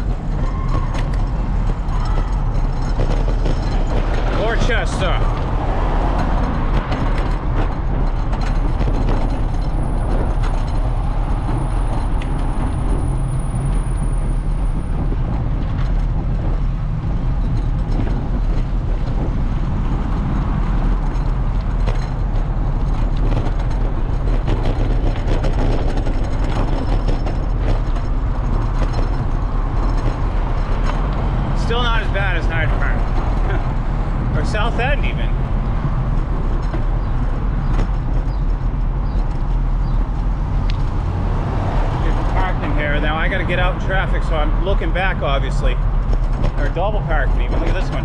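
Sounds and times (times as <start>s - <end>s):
knocks from pavement bumps: 0.0s - 48.0s
motor traffic: 0.0s - 48.0s
tyre and road noise: 0.0s - 48.0s
wind rumble on microphone: 0.0s - 48.0s.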